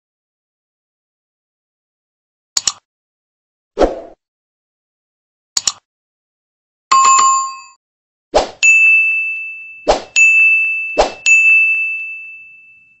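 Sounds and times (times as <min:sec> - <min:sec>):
notification bell ding: 0:06.9 - 0:07.8, 0:08.6 - 0:13.0
bright ringing chime: 0:08.6 - 0:13.0.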